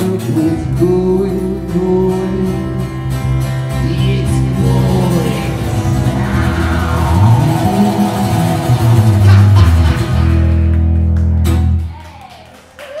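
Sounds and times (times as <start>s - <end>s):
acoustic guitar: 0.0s - 11.9s
electric bass: 0.0s - 11.9s.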